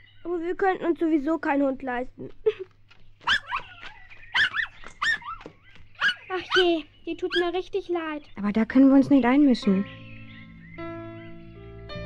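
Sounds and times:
dog whimpering and yipping: 3.2s - 6.7s, 7.3s - 7.6s.

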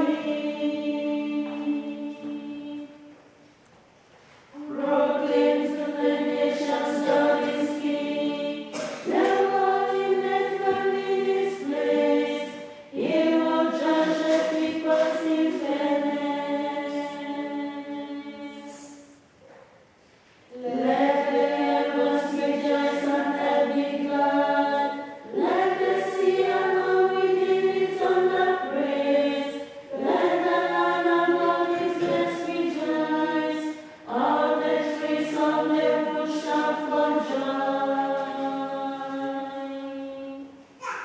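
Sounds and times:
women's choir singing unaccompanied: 0.0s - 3.4s, 4.5s - 19.2s, 20.5s - 40.7s.

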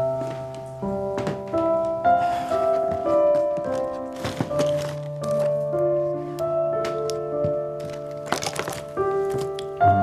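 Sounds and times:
slow sustained background music: 0.0s - 10.0s.

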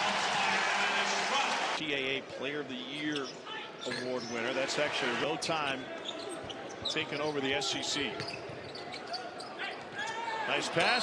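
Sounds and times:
arena crowd noise: 0.0s - 11.0s.

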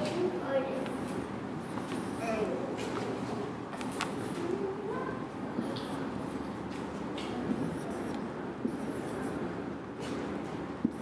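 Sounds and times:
marker writing on whiteboard: 0.8s - 3.1s, 5.5s - 11.0s.

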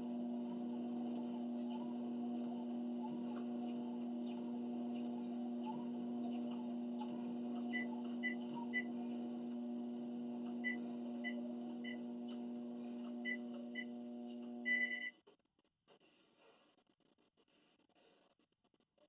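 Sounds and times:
treadmill motor humming: 0.0s - 15.1s.

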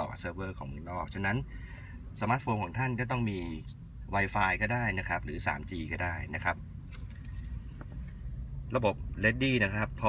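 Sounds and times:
low background hum: 0.0s - 10.0s
car key jingling: 6.9s - 8.0s.

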